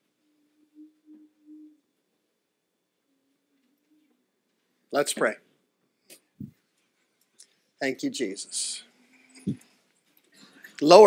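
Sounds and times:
faint low tone pulsing: 0.0s - 4.9s.

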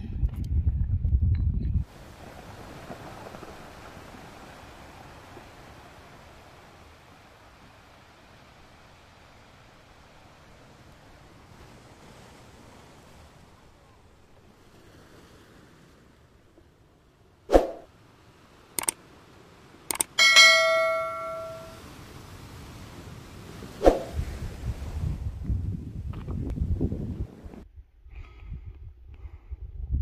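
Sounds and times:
low uneven rumble: 0.0s - 7.7s
metallic clang ringing: 20.2s - 21.8s.

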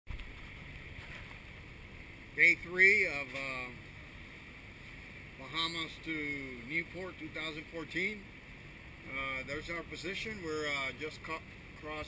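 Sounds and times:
low engine drone: 0.1s - 12.0s
wind: 0.1s - 12.0s.

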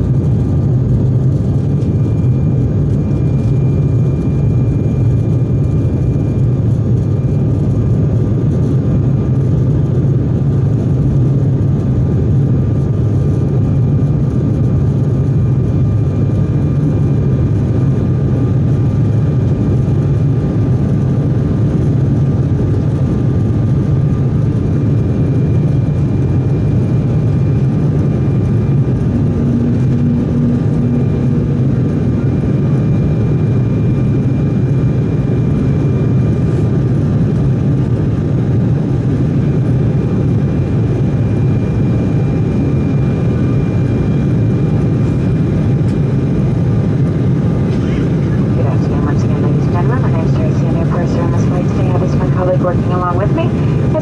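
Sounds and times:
jet cabin rumble of airflow and engines: 0.0s - 54.0s
faint whining tones: 24.8s - 36.8s, 41.4s - 54.0s.

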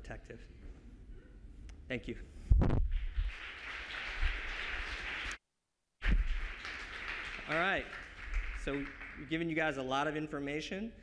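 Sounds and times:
audience applauding: 3.0s - 5.4s, 6.0s - 9.6s.

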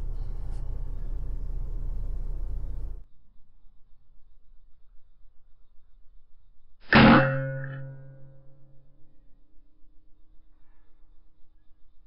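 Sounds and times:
metallic ringing tone: 6.9s - 10.0s.

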